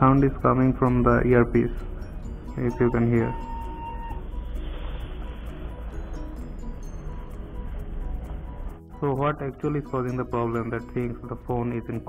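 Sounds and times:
music through phone earpiece: 0.0 - 12.0.

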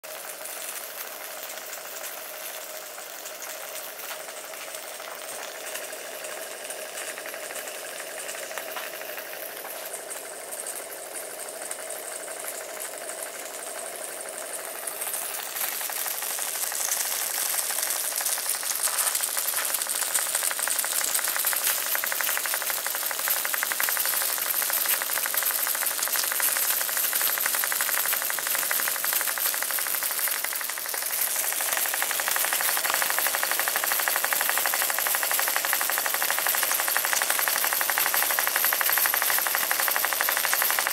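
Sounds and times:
steam engine mechanical beat: 0.0 - 40.9
steam hissing: 0.0 - 40.9.

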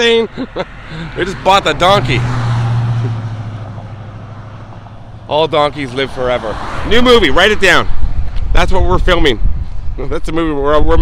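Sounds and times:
road vehicle passing: 0.0 - 8.6.

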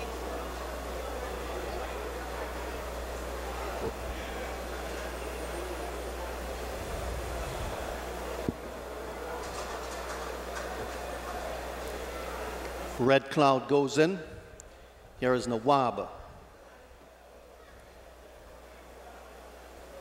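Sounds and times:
low electrical hum: 0.0 - 20.0
outdoor background noise: 0.0 - 20.0.

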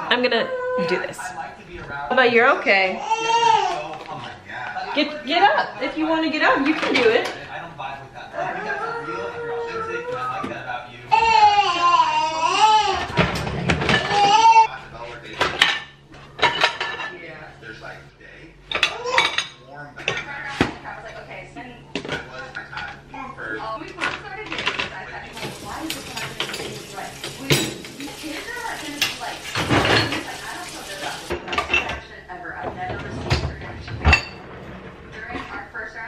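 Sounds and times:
dishes and cutlery clinking: 6.6 - 7.4, 12.9 - 17.2, 18.7 - 20.8, 23.8 - 35.6.

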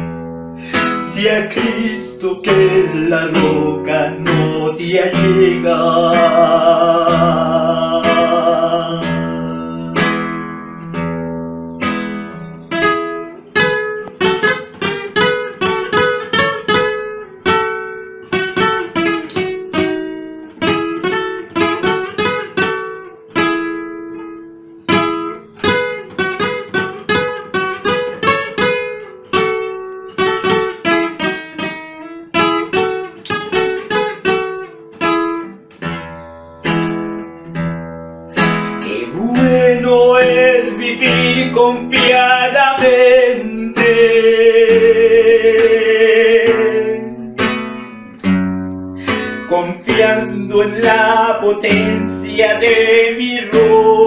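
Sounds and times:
acoustic guitar picking melody: 0.0 - 54.0.

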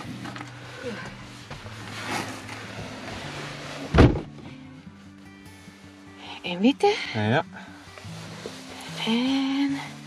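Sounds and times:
rustle of someone climbing in: 0.0 - 4.7
quiet background music: 0.0 - 10.0
car door shutting: 2.5 - 4.5.

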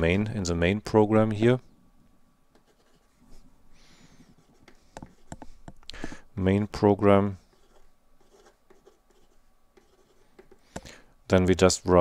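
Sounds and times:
pen scratching on paper: 7.5 - 10.6.

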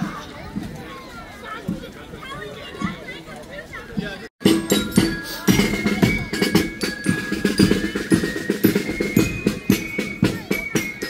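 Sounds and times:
held high notes: 4.4 - 11.0
marching band playing: 4.4 - 11.0
snare and bass drums: 4.4 - 11.0.

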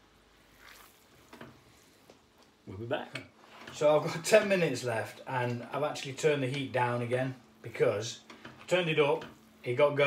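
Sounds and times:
honey sizzling in a pot: 0.0 - 2.4.

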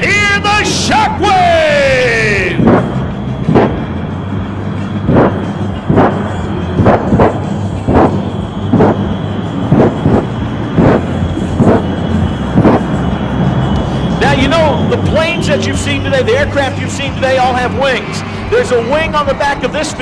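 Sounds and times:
jet engines rumbling: 0.0 - 20.0
afterburner bangs: 2.1 - 20.0.

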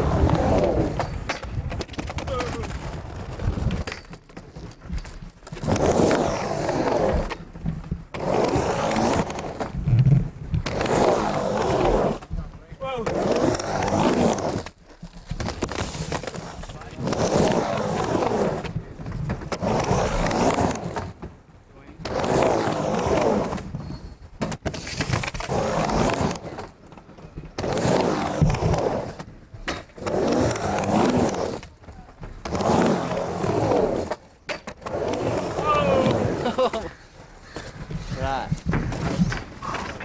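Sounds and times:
skateboard wheels rolling: 0.0 - 40.0.

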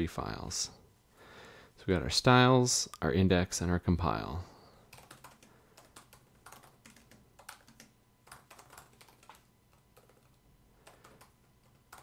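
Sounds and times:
typing on computer keyboard: 4.9 - 12.0.

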